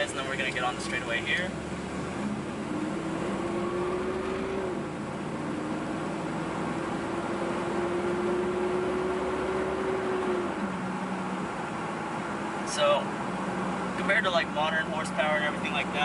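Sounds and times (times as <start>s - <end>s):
car engine accelerating: 0.0s - 16.0s
road noise: 0.0s - 16.0s.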